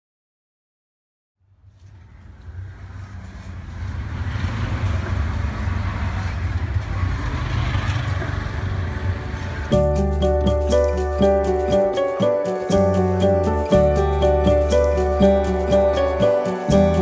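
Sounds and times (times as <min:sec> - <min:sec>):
street traffic noise: 0:01.4 - 0:17.0
auto-rickshaw engine droning: 0:01.9 - 0:09.7
music with sustained notes: 0:09.7 - 0:17.0.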